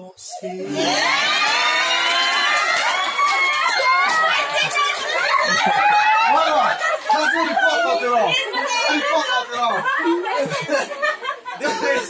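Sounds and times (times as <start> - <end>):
group laughing and shrieking: 0.7 - 12.0.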